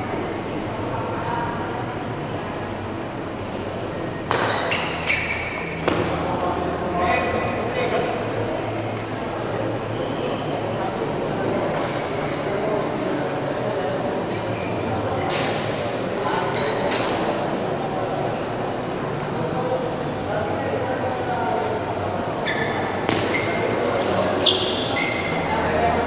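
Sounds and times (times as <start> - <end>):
murmur of spectators: 0.0 - 26.0.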